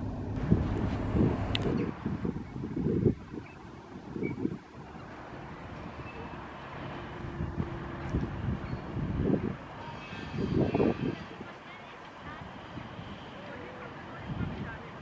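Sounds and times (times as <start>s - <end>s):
faint engine hum: 0.0s - 10.0s
wind buffeting microphone: 0.0s - 15.0s.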